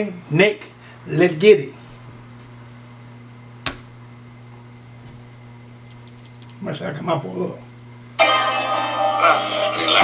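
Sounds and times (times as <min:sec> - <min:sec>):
low room hum: 0:00.0 - 0:10.0
computer mouse click: 0:05.9 - 0:06.6.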